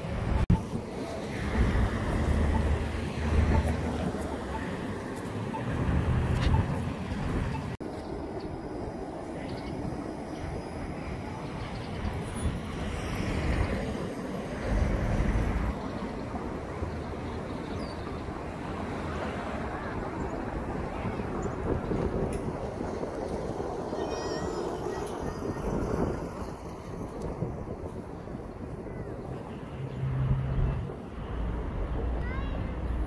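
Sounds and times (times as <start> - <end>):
cars passing: 0.0 - 7.8, 10.4 - 33.0
streetcar running on tracks: 0.0 - 33.0.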